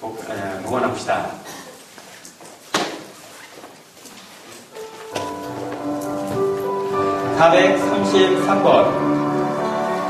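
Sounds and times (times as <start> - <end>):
electronic keyboard organ chords: 4.9 - 10.0.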